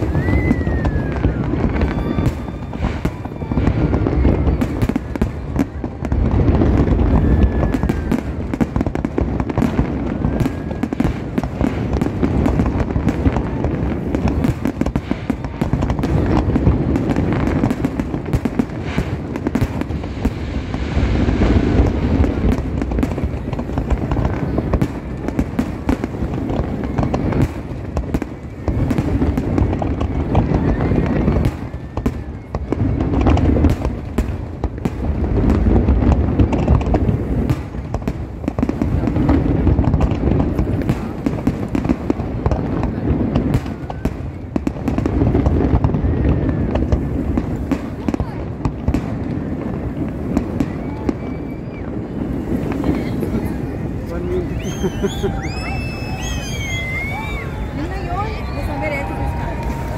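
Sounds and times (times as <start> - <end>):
deep fireworks booms: 0.0 - 59.9
fireworks bangs and crackling: 0.0 - 59.9.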